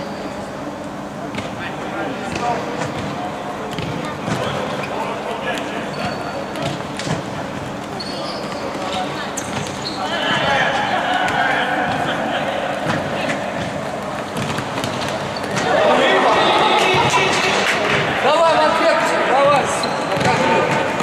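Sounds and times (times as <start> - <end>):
players shouting: 9.8 - 21.0
ball being kicked: 20.1 - 20.9.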